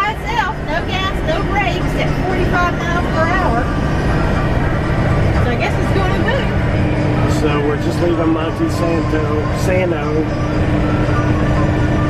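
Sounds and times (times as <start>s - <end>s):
road and drive rumble in cab: 0.0s - 12.0s.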